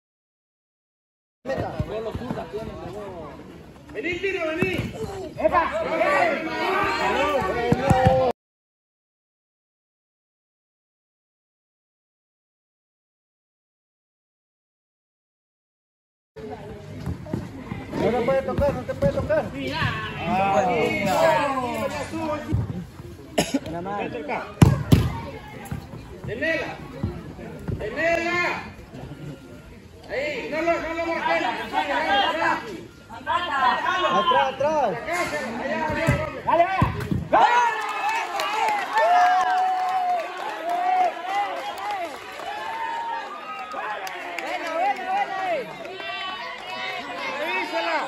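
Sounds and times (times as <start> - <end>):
players' voices: 1.5 - 8.3, 16.4 - 39.2, 40.3 - 48.0
person coughing: 23.4 - 23.7.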